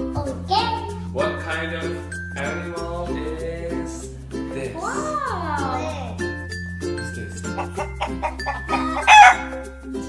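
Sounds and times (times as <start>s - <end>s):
light background music: 0.0s - 10.0s
chicken call: 7.6s - 9.6s.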